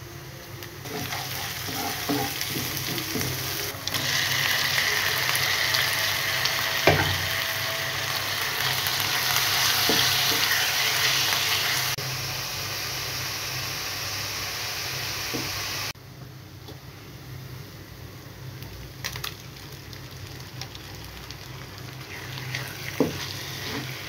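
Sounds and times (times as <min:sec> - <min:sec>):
meat and onions sizzling in oil: 0:00.6 - 0:16.0, 0:18.7 - 0:24.0
sharp knocks in pan: 0:06.8 - 0:07.3.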